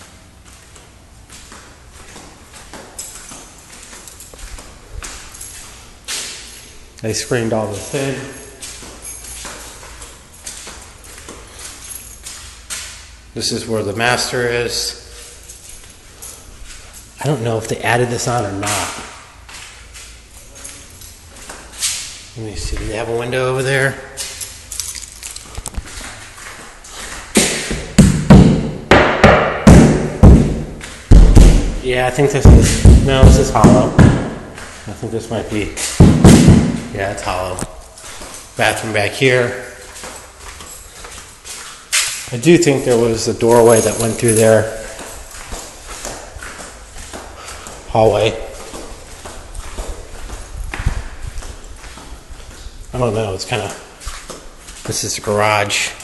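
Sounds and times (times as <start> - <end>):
footsteps on tile floor: 0.0 - 13.3, 15.1 - 28.8, 29.9 - 55.3
heavy thump: 27.4 - 31.8, 32.4 - 34.5, 35.9 - 36.9.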